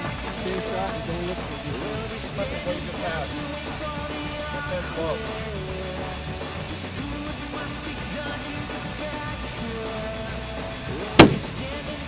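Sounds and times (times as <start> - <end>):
background music: 0.0 - 12.0
loud rifle shot: 11.2 - 11.7.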